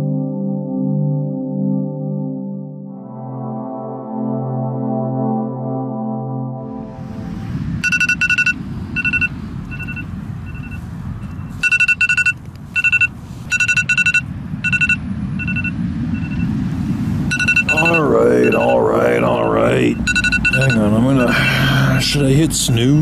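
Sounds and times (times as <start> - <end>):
background music: 0.0 - 7.6
low steady rumble: 6.6 - 23.0
phone alarm two-tone beeps: 7.8 - 16.5, 17.3 - 21.5.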